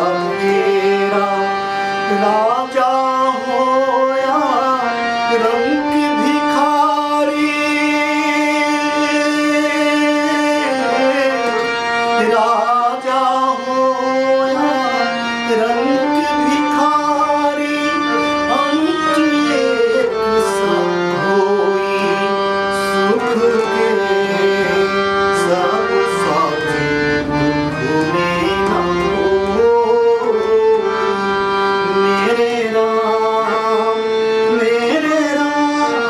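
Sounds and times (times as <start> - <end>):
harmonium: 0.0 - 36.0
man singing devotional song: 0.0 - 36.0.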